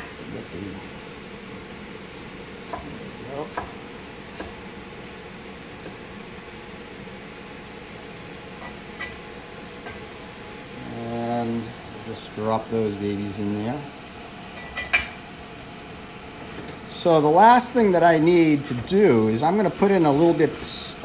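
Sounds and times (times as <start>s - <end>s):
food sizzling in a wok: 0.0s - 21.0s.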